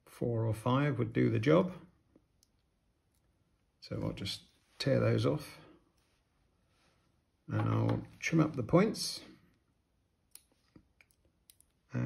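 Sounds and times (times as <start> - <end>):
man speaking: 0.0 - 1.9, 3.8 - 5.8, 7.4 - 9.4.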